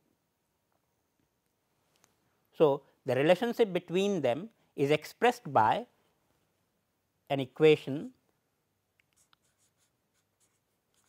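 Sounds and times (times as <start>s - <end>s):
marker pen writing on paper: 9.0s - 11.0s.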